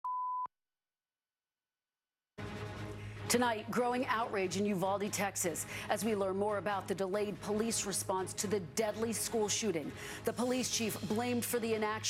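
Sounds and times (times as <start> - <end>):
pure-tone beep: 0.0 - 0.5.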